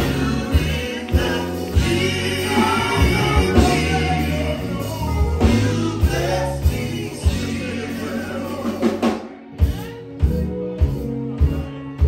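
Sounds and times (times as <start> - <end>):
gospel quartet singing: 0.0 - 11.5
drum beats: 0.0 - 12.0
low bass notes: 0.0 - 12.0.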